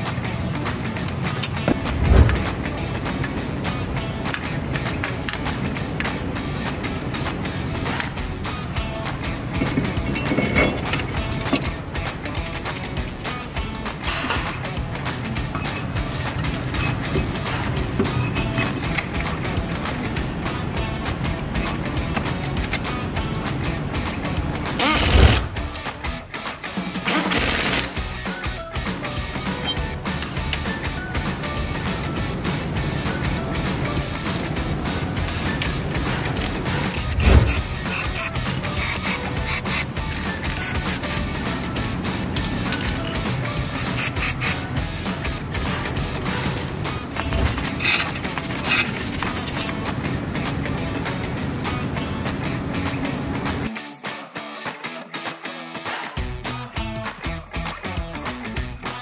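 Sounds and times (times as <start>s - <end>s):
background music with steady beat: 0.0s - 59.0s
pneumatic impact wrench rattling: 14.0s - 14.6s, 24.8s - 25.6s, 27.0s - 28.0s, 36.9s - 41.2s, 41.8s - 44.6s, 47.2s - 49.7s
wire brush scraping metal: 36.9s - 41.2s, 42.7s - 44.6s, 47.2s - 49.8s.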